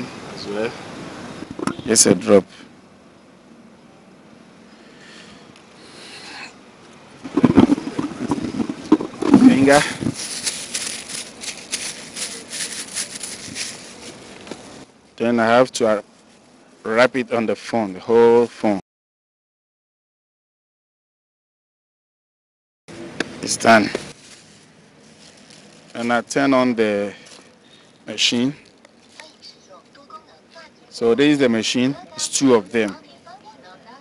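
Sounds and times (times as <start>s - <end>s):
faint background noise with hum: 0.0s - 18.8s, 22.9s - 34.0s
plastic film crinkling: 7.2s - 14.8s, 24.1s - 26.2s.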